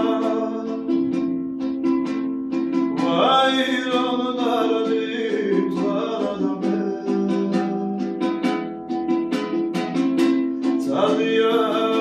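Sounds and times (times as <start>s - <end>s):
person singing: 0.0s - 1.3s, 3.0s - 8.5s, 10.7s - 12.0s
plucked string instrument: 0.0s - 12.0s.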